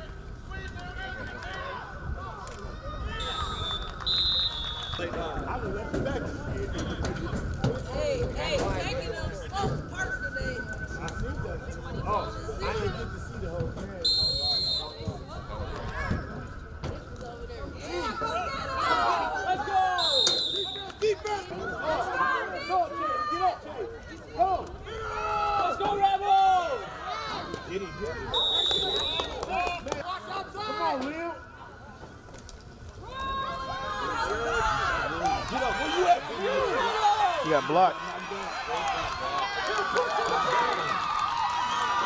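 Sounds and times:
players and spectators calling out: 0.0s - 32.3s, 32.9s - 42.0s
people shouting calls: 0.6s - 5.4s, 14.0s - 16.5s
referee's whistle blasts: 3.1s - 5.2s, 14.0s - 15.1s, 19.9s - 21.0s, 28.3s - 29.4s.

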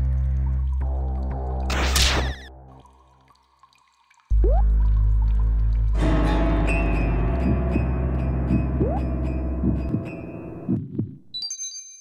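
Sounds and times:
background music: 4.4s - 11.3s
low soft thumps: 7.2s - 11.2s.

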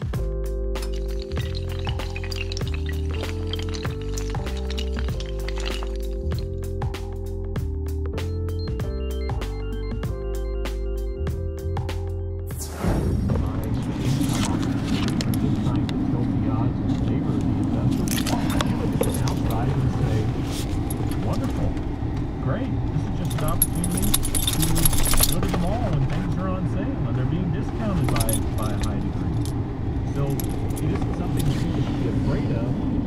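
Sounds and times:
metal pieces jingling: 0.8s - 6.6s, 18.0s - 19.7s, 23.3s - 25.5s, 28.0s - 29.6s, 30.2s - 31.5s
car cabin engine rumble: 13.2s - 33.0s.

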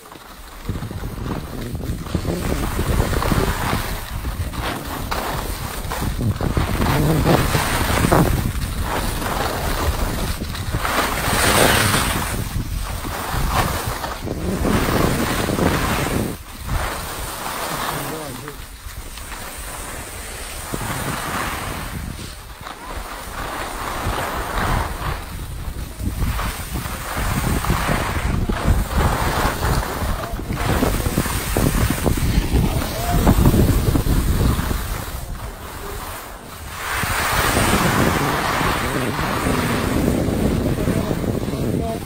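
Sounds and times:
skis hissing and scraping on snow: 0.0s - 42.0s
wind rushing over microphone: 0.0s - 42.0s.

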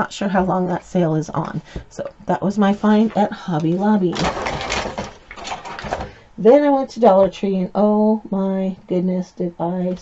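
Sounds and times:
plastic bag crinkling: 2.8s - 6.1s.

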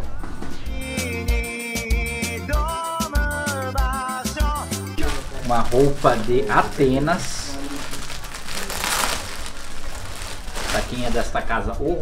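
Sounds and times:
plastic bag crinkling: 5.0s - 11.5s.

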